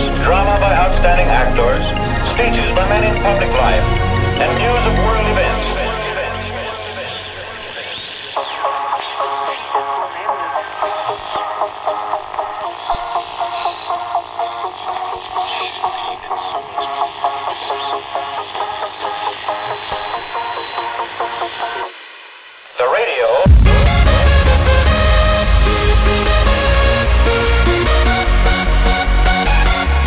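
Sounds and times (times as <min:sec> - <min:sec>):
rising sweep: 0:23.4 - 0:29.9
staccato synth melody: 0:23.4 - 0:30.0.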